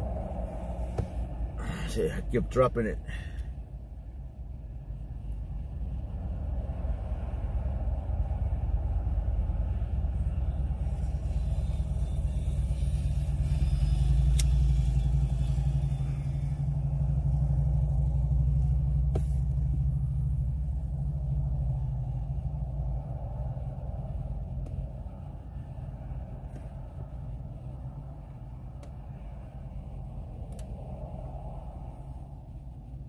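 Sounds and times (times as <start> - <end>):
low steady rumble: 0.0 - 33.0.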